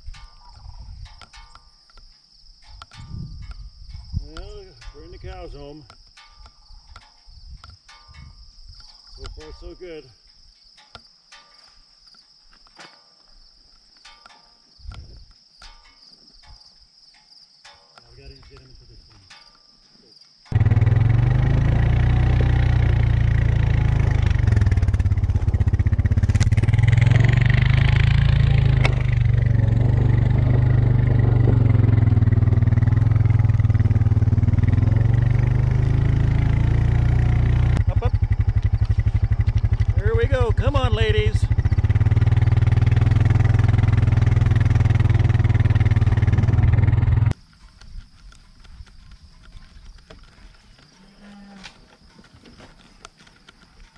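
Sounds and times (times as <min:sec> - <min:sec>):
faint clicks: 0:00.0 - 0:19.7
crickets chirring: 0:00.0 - 0:53.9
small farm bike engine running: 0:20.5 - 0:47.4.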